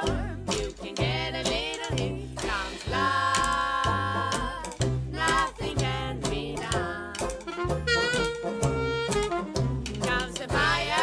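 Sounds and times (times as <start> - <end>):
female vocal harmony singing: 0.0 - 7.4, 10.0 - 11.0
trad jazz band: 0.0 - 11.0
walking upright bass: 0.0 - 11.0.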